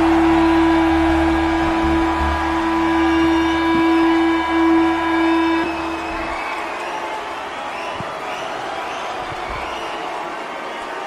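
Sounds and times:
bass guitar: 0.0s - 6.4s
rock band sustained note: 0.0s - 7.6s.

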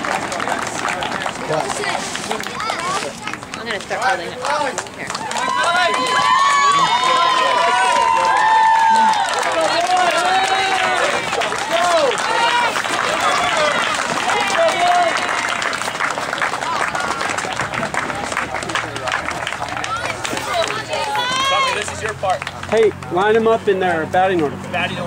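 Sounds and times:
children shouting and chattering: 5.2s - 22.2s.

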